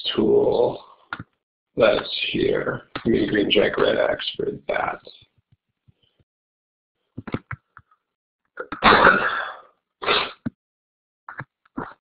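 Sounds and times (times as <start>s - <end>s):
person sneezing: 8.6s - 10.5s.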